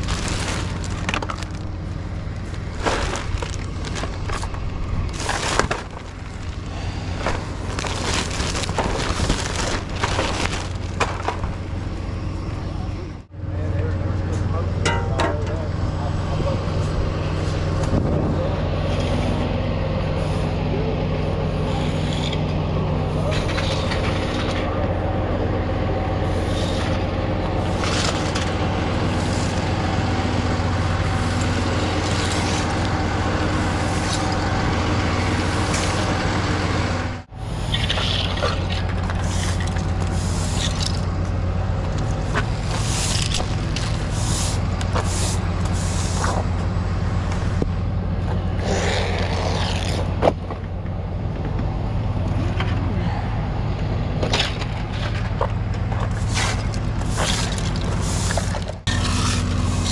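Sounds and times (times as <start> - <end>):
debris rustling and clattering: 0.0 - 12.0, 14.8 - 15.6, 26.6 - 33.0, 37.7 - 46.7, 54.2 - 59.9
diesel engine idling: 0.0 - 59.9
broom scraping on concrete: 20.1 - 20.6, 21.4 - 22.4, 26.2 - 28.5, 29.1 - 29.6, 39.2 - 41.0, 42.6 - 46.4, 56.1 - 59.9.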